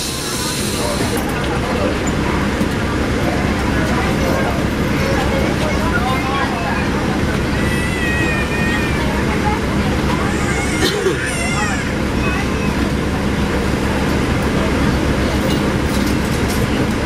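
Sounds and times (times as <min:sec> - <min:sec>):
bus engine and ventilation hum: 0:00.0 - 0:17.0
indistinct passenger voices: 0:00.0 - 0:17.0.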